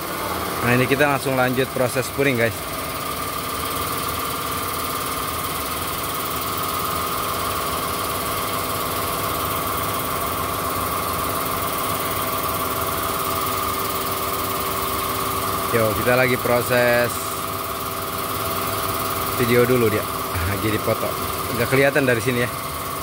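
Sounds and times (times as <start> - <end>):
engine idling with whine: 0.0 - 23.0.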